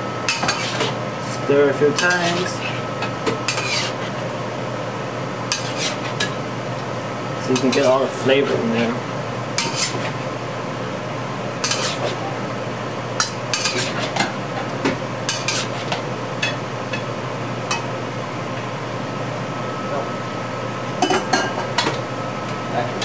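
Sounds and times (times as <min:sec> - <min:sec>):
metal utensil scraping a wok: 0:00.3 - 0:01.0, 0:02.0 - 0:02.9, 0:03.5 - 0:04.2, 0:05.5 - 0:06.2, 0:09.6 - 0:10.1, 0:11.6 - 0:12.2, 0:13.5 - 0:14.2, 0:15.3 - 0:15.9.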